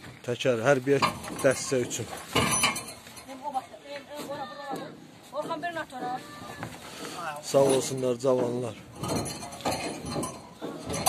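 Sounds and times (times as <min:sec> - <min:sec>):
tyres handled and stacked: 0:00.0 - 0:03.4, 0:04.1 - 0:11.0
rubbery knock and scrape: 0:05.3 - 0:11.0.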